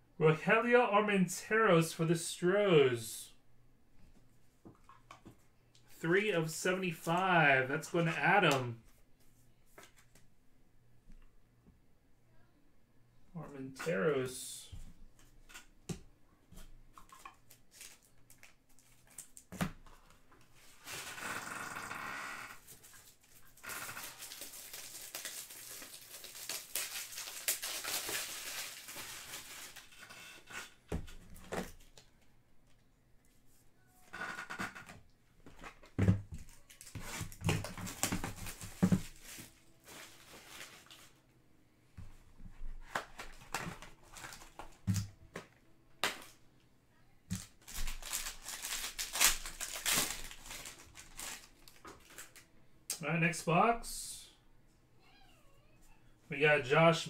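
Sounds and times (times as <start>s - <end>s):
foil wrapper crinkling and tearing: 22.7s - 30.4s, 47.4s - 52.4s.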